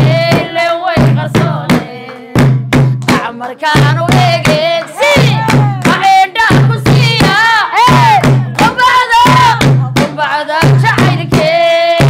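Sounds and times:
drum struck with wooden sticks: 0.0 - 11.6
women singing: 0.0 - 12.0.

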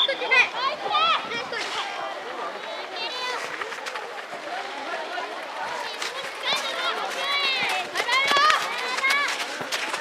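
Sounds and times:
children shouting: 4.5 - 10.0.

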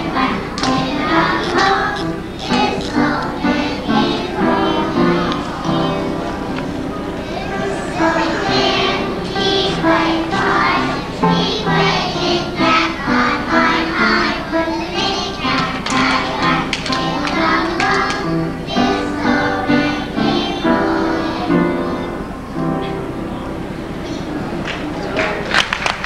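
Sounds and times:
children singing in chorus: 0.0 - 23.2
music: 0.0 - 26.0.

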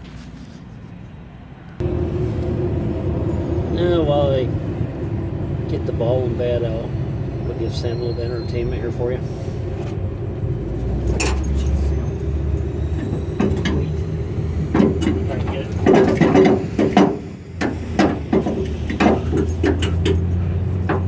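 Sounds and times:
steady low hum: 1.8 - 7.6
tire rattling and knocking: 13.0 - 21.0.

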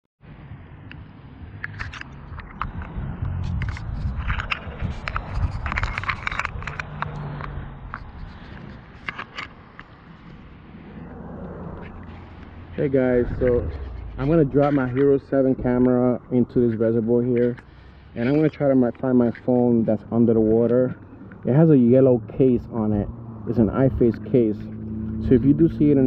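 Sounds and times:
fingers handling camera: 1.6 - 10.4
steady low rumble: 10.2 - 18.1.

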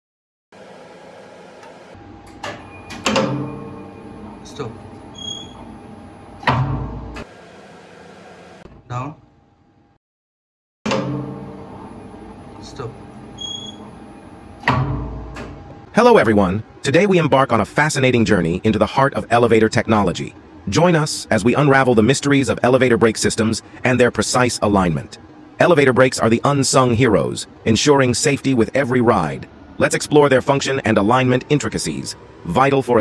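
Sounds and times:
steady hum: 0.6 - 9.1, 10.9 - 33.0
elevator brake clacking: 1.6 - 3.8.

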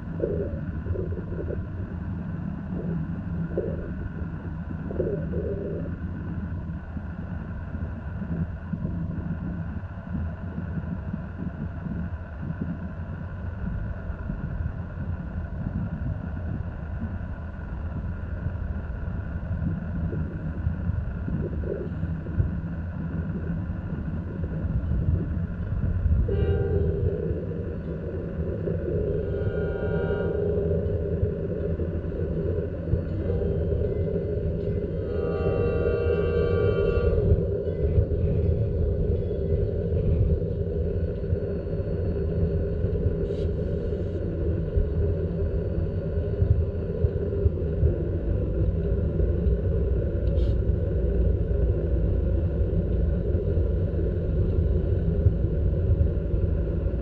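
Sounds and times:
diesel locomotive rumble: 19.0 - 41.3
train air horn chord: 26.3 - 27.0, 29.3 - 30.4, 35.0 - 37.4.

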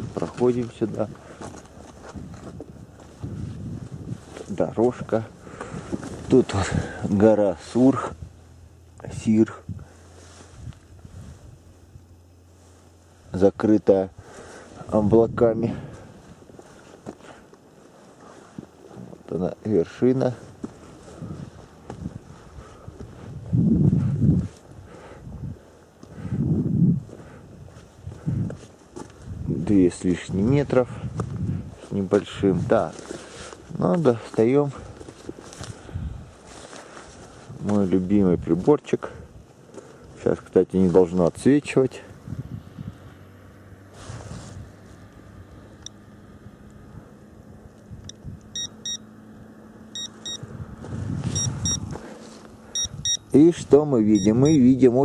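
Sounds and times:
footsteps crunching on loose rock: 0.0 - 7.2, 15.9 - 19.4, 20.1 - 24.7, 27.0 - 29.5, 31.1 - 38.0, 50.8 - 52.6
wind buffeting microphone: 2.0 - 7.2, 20.5 - 32.9, 34.8 - 36.5, 42.1 - 43.3, 46.9 - 48.6, 50.2 - 52.1, 52.7 - 53.3
detector beeping: 48.1 - 49.1, 49.9 - 50.5, 51.3 - 51.9, 52.7 - 53.4, 54.1 - 54.7.

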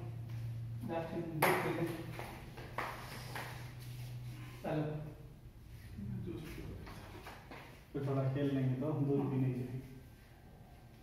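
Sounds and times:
steady low hum: 0.0 - 11.0
man speaking: 5.9 - 7.0, 7.9 - 10.0.

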